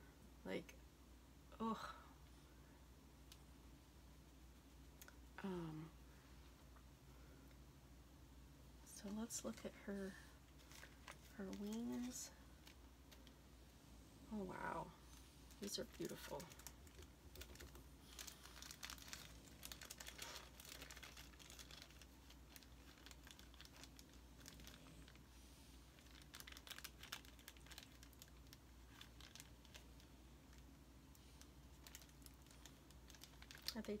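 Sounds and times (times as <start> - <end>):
plastic bag crinkling: 10.4 - 13.4, 14.6 - 25.3, 25.9 - 34.0.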